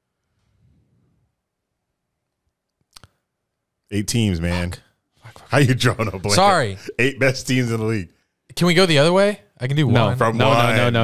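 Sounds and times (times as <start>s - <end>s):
man's voice: 4.0s - 11.0s.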